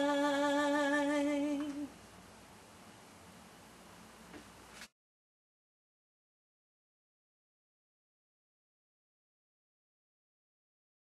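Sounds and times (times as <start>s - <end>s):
woman singing unaccompanied: 0.0s - 2.0s
faint room hiss: 0.0s - 4.9s.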